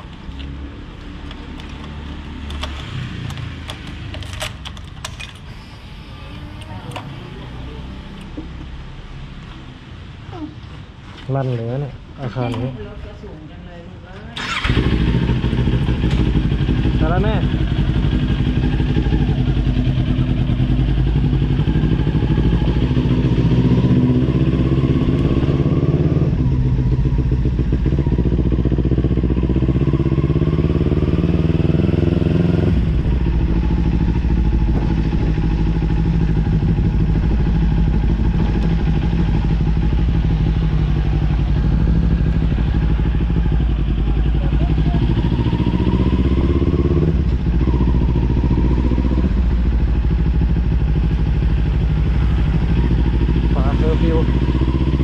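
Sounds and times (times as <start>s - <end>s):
motorcycle engine revving: 0.0s - 5.2s, 14.4s - 55.0s.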